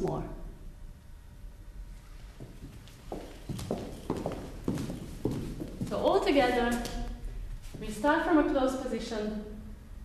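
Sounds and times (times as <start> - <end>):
footsteps on hard floor: 2.4 - 7.0.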